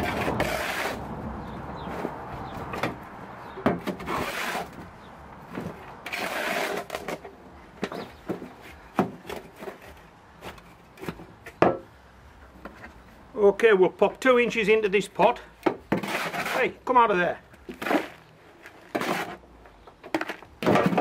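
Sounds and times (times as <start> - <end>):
shovel scraping soil: 0.0 - 1.1, 4.0 - 4.8, 5.6 - 7.3, 15.9 - 16.8, 17.7 - 19.4.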